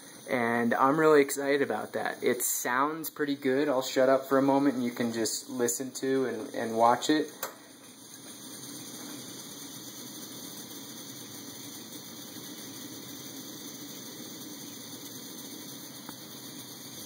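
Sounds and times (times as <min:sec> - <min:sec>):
camping stove burner rush: 0:00.0 - 0:17.0.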